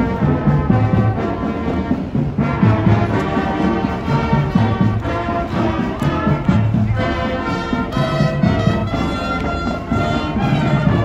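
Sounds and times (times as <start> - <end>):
brass instruments: 0.0 - 11.0
steady drum beat: 0.0 - 11.0.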